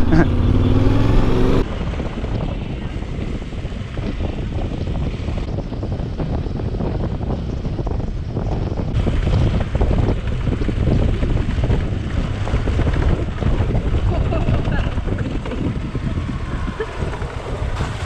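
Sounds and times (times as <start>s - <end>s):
motorcycle engine running: 0.0s - 18.0s
wind rush on microphone: 0.0s - 18.0s.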